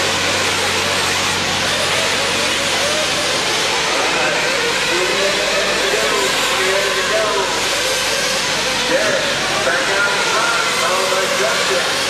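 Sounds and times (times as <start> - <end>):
rc truck engines whining: 0.0 - 12.0
voices talking: 0.2 - 12.0.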